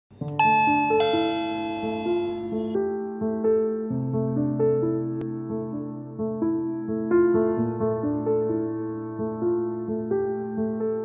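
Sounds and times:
bell-like keyboard notes: 0:00.4 - 0:02.8.

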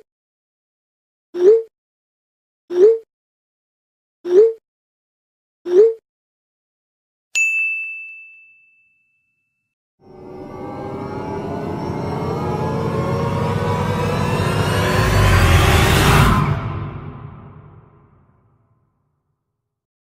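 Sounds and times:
bright ding: 0:07.4 - 0:09.6
riser sound effect: 0:10.0 - 0:18.6.

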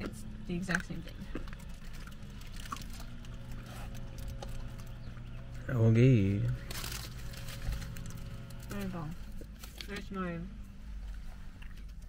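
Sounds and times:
low hum in car cabin: 0:00.0 - 0:12.0
paper wrapper crinkling: 0:01.4 - 0:05.0, 0:06.6 - 0:10.0.

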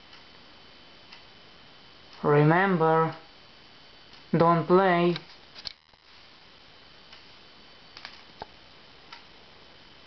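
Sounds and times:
steady low hiss: 0:00.0 - 0:10.0.

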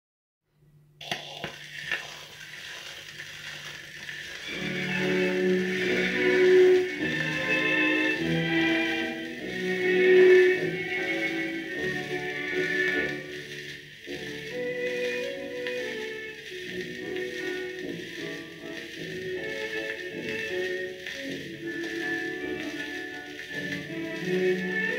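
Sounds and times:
record surface hiss: 0:00.5 - 0:24.9
orchestra playing a waltz: 0:04.4 - 0:24.9.

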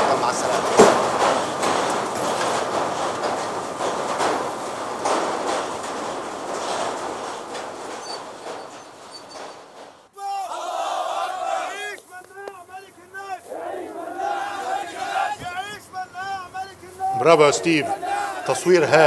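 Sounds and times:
factory machinery noise: 0:00.0 - 0:10.1, 0:11.4 - 0:19.0
crowd chanting: 0:10.1 - 0:19.0
crowd murmur: 0:10.2 - 0:16.1, 0:16.7 - 0:19.0
high cries rising and falling: 0:13.2 - 0:15.8.

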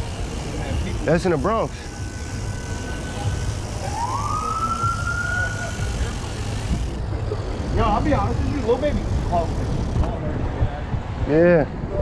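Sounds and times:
road noise and wind: 0:00.0 - 0:12.0
emergency siren wailing: 0:03.8 - 0:06.0.

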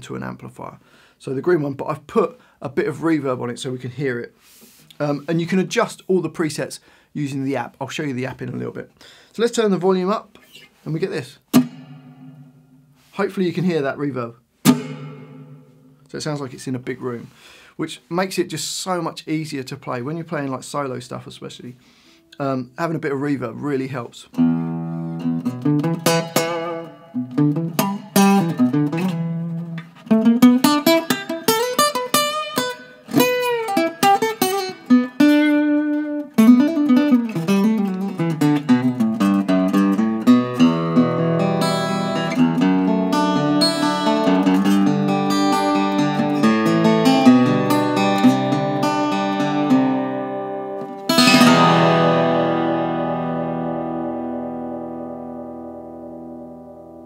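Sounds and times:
fingerstyle guitar with reverb: 0:11.4 - 0:13.1, 0:14.6 - 0:16.1, 0:24.3 - 0:57.0.

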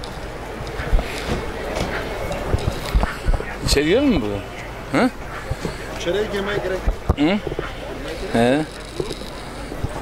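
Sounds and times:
faint voices of passers-by: 0:00.0 - 0:10.0
street noise: 0:00.0 - 0:10.0.

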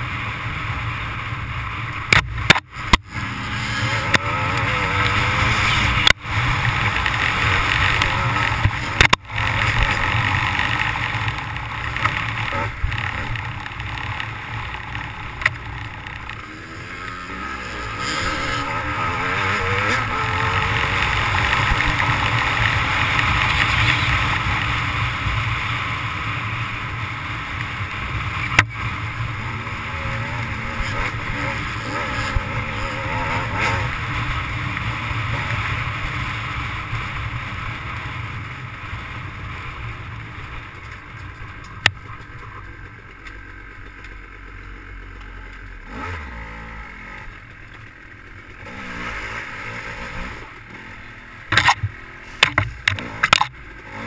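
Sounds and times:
dirt bike engine revving: 0:00.0 - 0:40.7, 0:45.7 - 0:47.4, 0:48.3 - 0:54.0.

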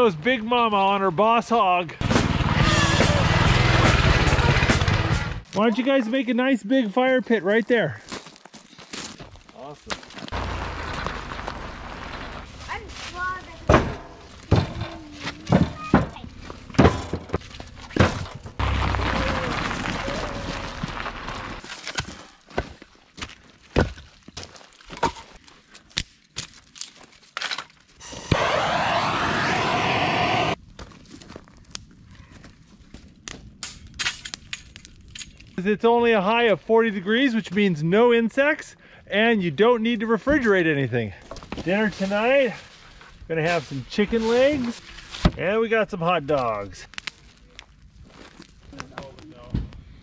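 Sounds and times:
firewood thunking down: 0:13.6 - 0:22.8
dry sticks snapping: 0:46.8 - 0:47.8.

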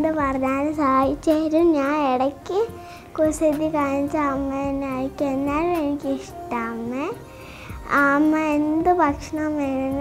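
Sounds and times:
girl singing held notes: 0:01.0 - 0:10.0.

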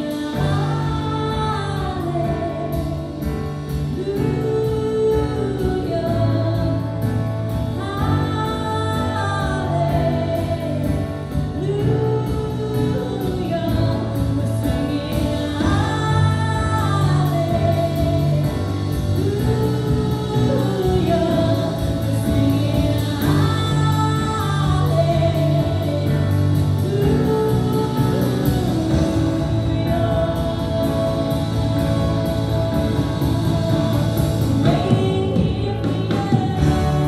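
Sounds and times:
woman singing: 0:00.0 - 0:37.0
worship band playing: 0:00.0 - 0:37.0.

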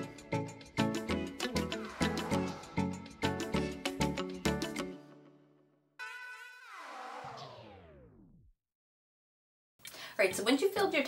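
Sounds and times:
background music: 0:00.0 - 0:05.9, 0:10.2 - 0:11.0.

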